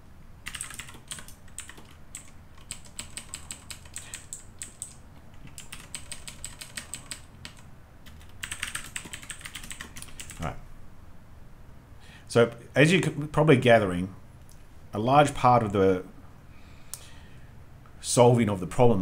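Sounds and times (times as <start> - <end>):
typing on a computer keyboard: 0.4 - 10.5.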